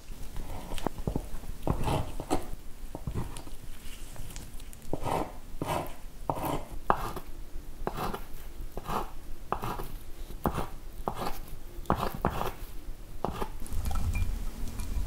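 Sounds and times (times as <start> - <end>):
knife chopping on wooden board: 4.9 - 7.2, 7.9 - 8.2, 8.8 - 12.6, 13.2 - 13.5.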